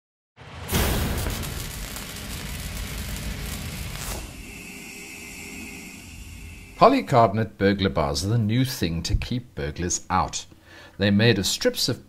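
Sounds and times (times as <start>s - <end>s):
rumbling boom: 0.4s - 4.8s
steady hum: 0.7s - 9.1s.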